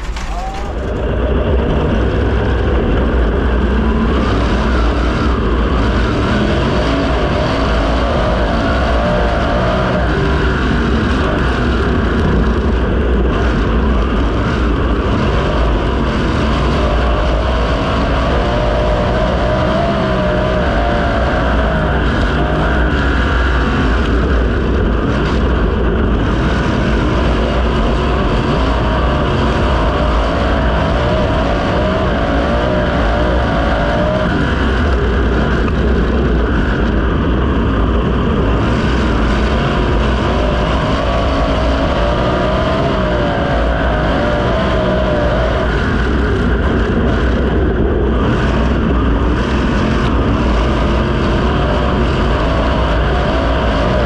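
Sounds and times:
race car engine running hard: 0:00.0 - 0:54.0.

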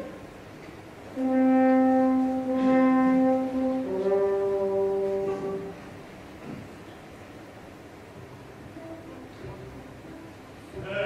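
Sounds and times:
orchestra playing held chords: 0:01.1 - 0:06.4.

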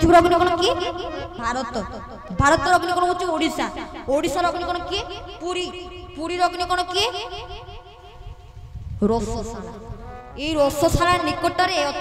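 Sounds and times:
child repeating laughter-like syllables: 0:00.7 - 0:02.3.

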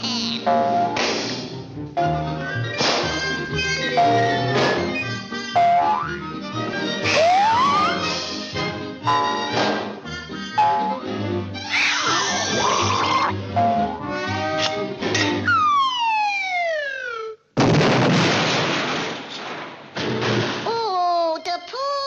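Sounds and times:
orchestral cartoon music: 0:00.0 - 0:16.0
upward pitch slide: 0:07.0 - 0:08.2, 0:10.6 - 0:11.0, 0:12.0 - 0:17.4
sharp crashes: 0:17.6 - 0:20.8.

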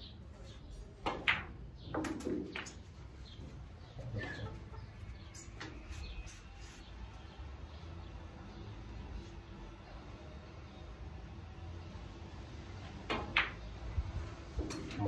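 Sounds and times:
snooker balls clicking: 0:01.0 - 0:02.9.

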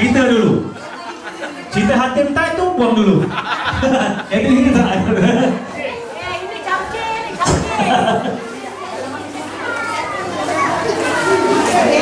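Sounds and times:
children calling and talking: 0:00.0 - 0:12.0
crowd chatter: 0:00.0 - 0:12.0.

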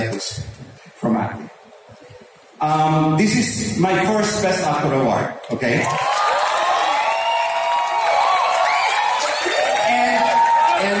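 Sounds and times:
audience clapping: 0:05.5 - 0:11.0
audience cheering: 0:05.8 - 0:11.0.

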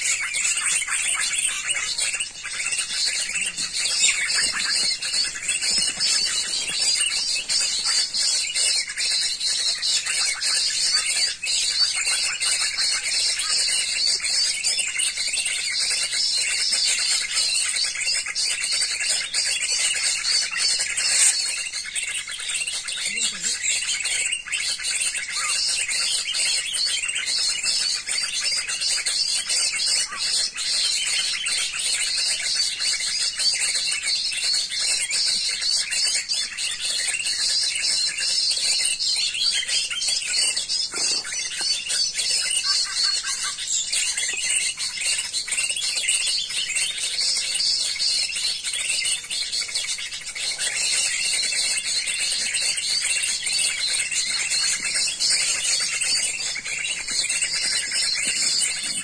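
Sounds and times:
birds chirping and twittering: 0:00.0 - 0:59.0.

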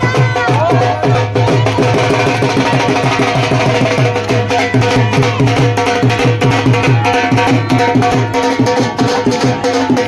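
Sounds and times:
drum beaten in fast rhythm: 0:00.0 - 0:10.0.

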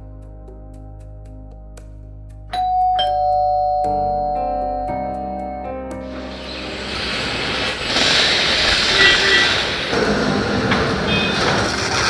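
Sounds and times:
soft background music: 0:00.0 - 0:08.1
electric doorbell chiming: 0:02.5 - 0:05.8.

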